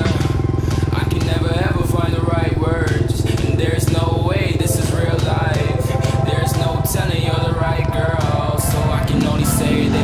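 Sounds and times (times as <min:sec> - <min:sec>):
two-stroke motorcycle engine idling: 0:00.0 - 0:10.0.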